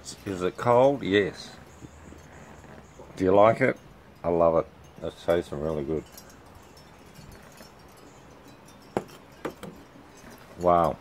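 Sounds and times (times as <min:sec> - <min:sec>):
glass clinking on glass tabletop: 0:07.3 - 0:11.0.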